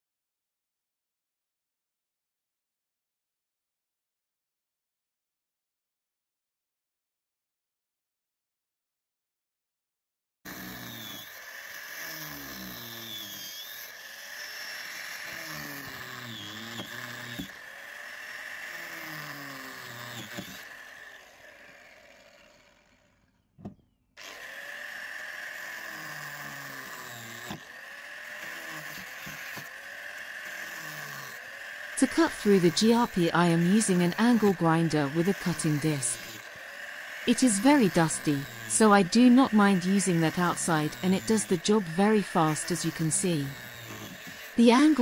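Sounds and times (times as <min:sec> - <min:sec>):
angle grinder cutting fibreglass: 0:10.5 - 0:45.0.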